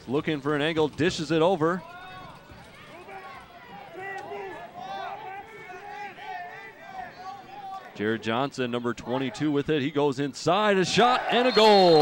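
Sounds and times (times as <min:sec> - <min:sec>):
distant voices of players: 0:00.4 - 0:09.7, 0:10.8 - 0:12.0
people shouting and calling out: 0:01.8 - 0:08.0, 0:10.8 - 0:12.0.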